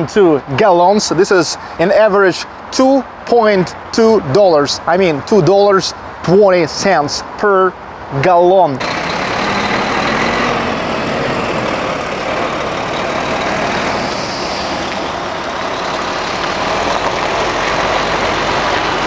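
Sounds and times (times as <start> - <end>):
diesel engine idling: 8.8 - 19.0.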